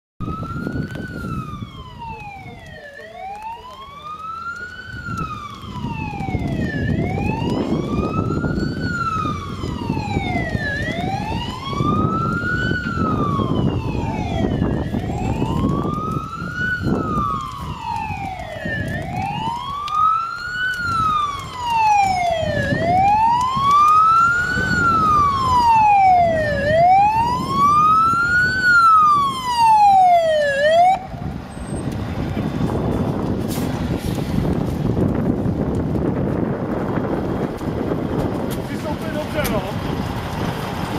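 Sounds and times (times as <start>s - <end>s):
fire engine siren wailing: 0.2s - 40.9s
truck engine rumble: 0.2s - 40.9s.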